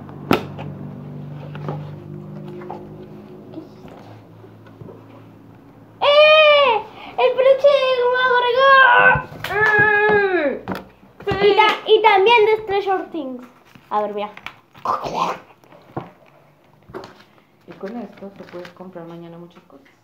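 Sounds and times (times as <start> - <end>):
high-pitched voice-like cries: 6.0 - 10.6.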